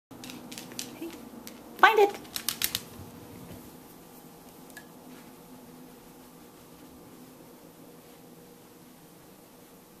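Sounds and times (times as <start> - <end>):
dog toenails clicking on tile: 0.1 - 3.1.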